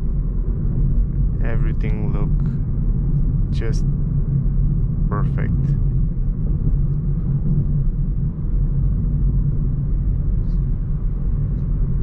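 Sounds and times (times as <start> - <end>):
car cabin road and engine rumble: 0.0 - 12.0.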